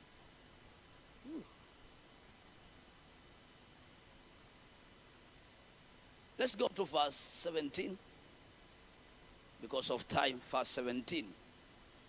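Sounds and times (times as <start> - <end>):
faint hiss: 0.0 - 12.0
short vocal syllable: 1.2 - 1.5.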